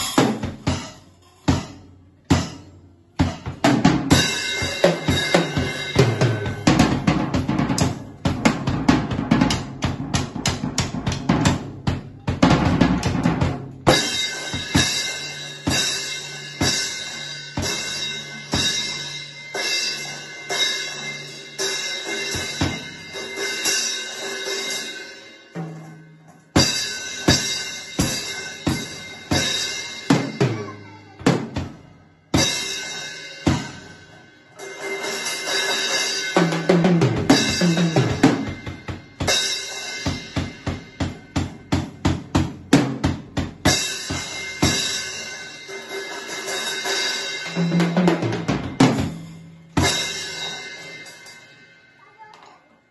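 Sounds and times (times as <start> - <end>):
drum kit played with sticks: 0.0 - 52.9.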